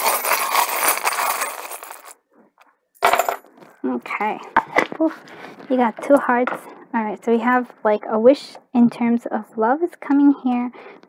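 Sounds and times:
metal charms jingling in hand: 0.0s - 2.1s.

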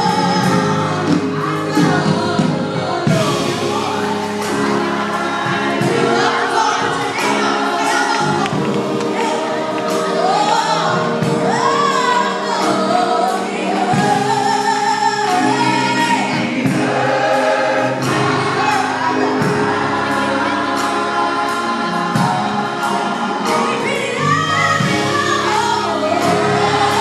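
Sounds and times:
gospel choir singing: 0.0s - 27.0s
instrumental backing: 0.0s - 27.0s.

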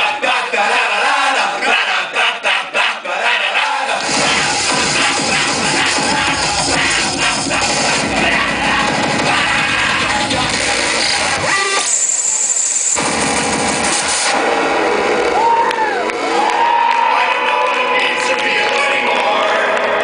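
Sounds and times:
crowd cheering and whooping: 0.0s - 10.4s, 14.4s - 20.0s
electronic music through pa: 3.4s - 20.0s.

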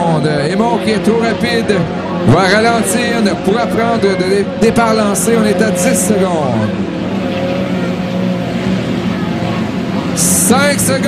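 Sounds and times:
racing boat engines droning: 0.0s - 11.0s.

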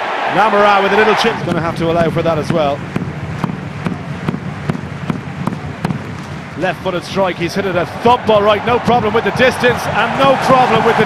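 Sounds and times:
stadium crowd ambience: 0.0s - 11.0s
sharp repeating knock: 1.4s - 6.4s.

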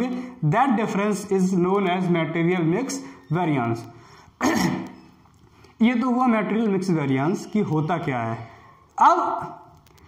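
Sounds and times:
man clearing his throat: 4.4s - 5.0s.

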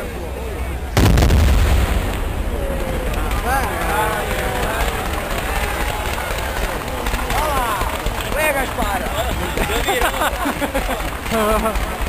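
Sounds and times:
firework bursts with rolling boom: 0.9s - 12.0s
firework crackle: 1.0s - 12.0s.

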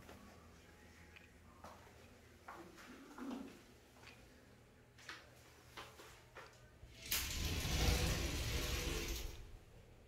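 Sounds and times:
sliding glass door rolling: 7.0s - 9.7s.

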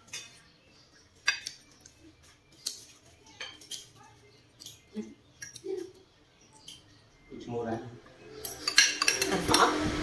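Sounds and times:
cutlery clinking on a plate: 1.2s - 1.6s, 8.4s - 9.4s.

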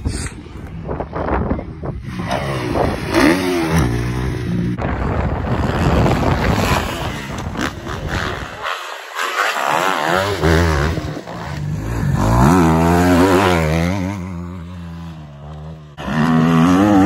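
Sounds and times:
motocross bike engine revving: 2.0s - 17.0s.

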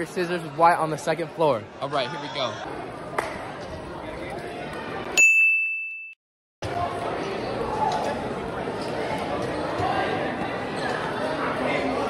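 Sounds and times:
students chattering: 0.0s - 5.2s, 6.6s - 12.0s.

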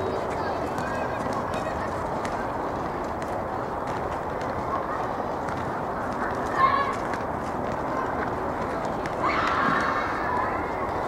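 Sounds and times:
rushing outdoor noise: 0.0s - 11.0s
young players shouting: 9.0s - 11.0s.

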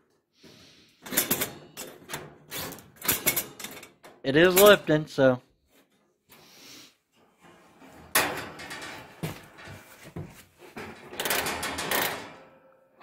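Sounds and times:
sheet metal cabinet scraping: 7.3s - 12.6s.

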